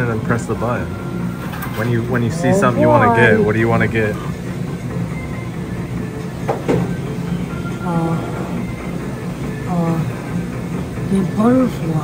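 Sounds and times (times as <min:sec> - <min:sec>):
arcade machine beeping: 0:00.0 - 0:09.7
low electronic hum: 0:00.0 - 0:12.0.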